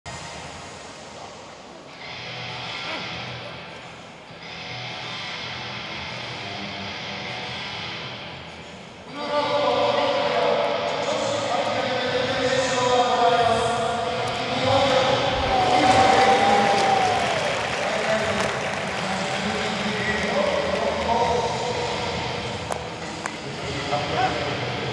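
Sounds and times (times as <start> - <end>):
stadium crowd: 9.0 - 24.9.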